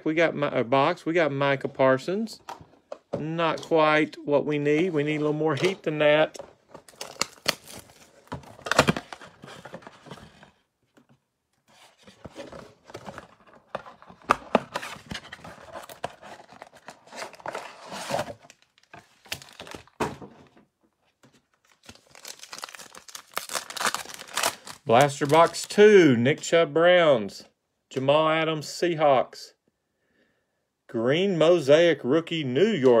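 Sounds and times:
packaging crinkling and tearing: 6.7s - 10.2s, 12.9s - 20.0s, 21.4s - 25.7s.

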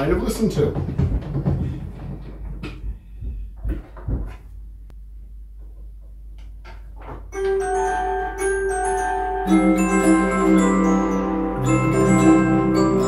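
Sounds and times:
wooden knocks and clicks: 0.5s - 4.5s, 5.6s - 7.6s.

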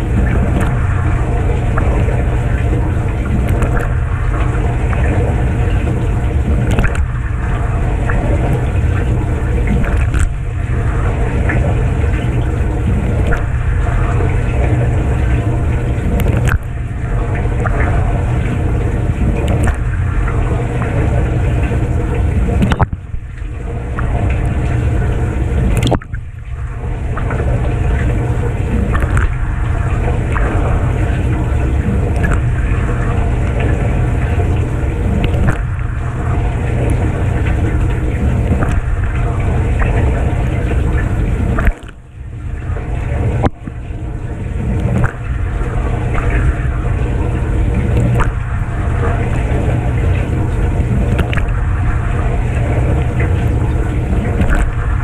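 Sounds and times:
dishwasher pump running: 0.0s - 55.0s.

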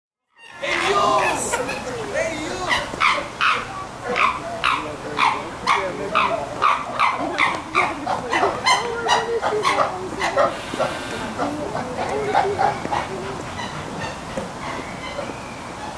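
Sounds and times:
chimpanzee pant-hoot calls: 2.6s - 15.9s.

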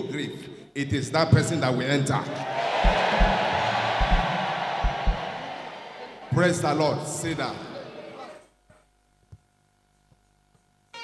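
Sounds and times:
crowd shouting and cheering: 2.3s - 8.4s
low drum beats: 2.7s - 5.5s.

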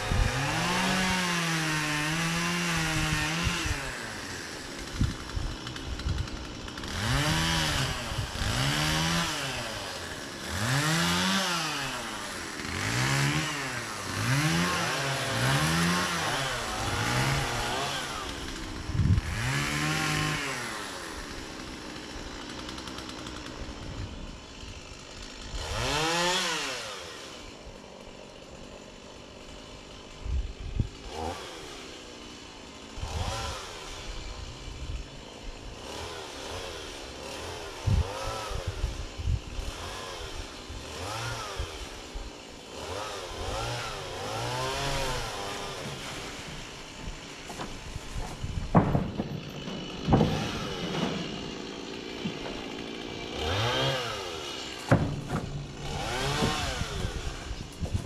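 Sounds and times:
two-stroke power tool revving: 0.0s - 58.0s
sharp knocks: 47.5s - 51.4s, 54.9s - 56.8s.

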